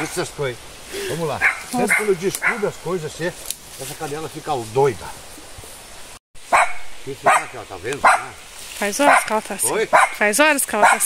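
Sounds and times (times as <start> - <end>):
dog barking: 1.4 - 2.8, 6.5 - 8.4, 9.0 - 11.0.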